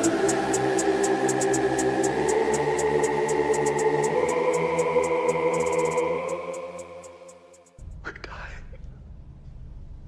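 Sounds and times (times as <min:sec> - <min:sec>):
steady low rumble: 0:07.8 - 0:10.0
breathy whispered voice: 0:08.0 - 0:08.8.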